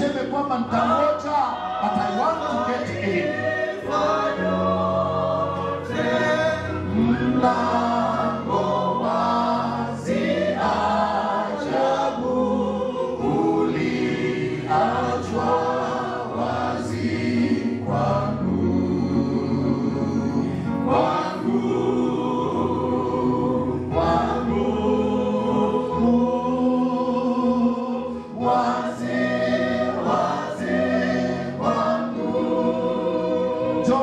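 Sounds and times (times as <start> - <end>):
singers leading congregation singing: 0.0 - 34.0.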